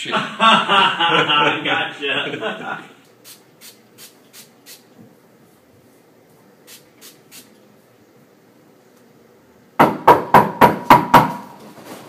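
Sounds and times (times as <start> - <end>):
fist knocking on door: 9.8 - 11.4.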